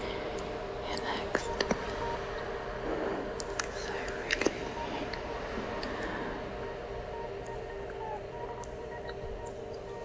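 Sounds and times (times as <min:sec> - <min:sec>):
held electronic tones: 0:00.0 - 0:10.0
high ticks: 0:07.1 - 0:10.0.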